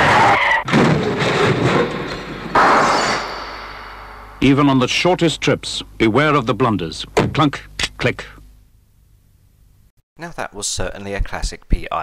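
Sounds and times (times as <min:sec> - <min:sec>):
car tyres squealing: 0:00.0 - 0:00.7
loud crash: 0:00.0 - 0:04.8
windscreen smashing: 0:00.7 - 0:03.0.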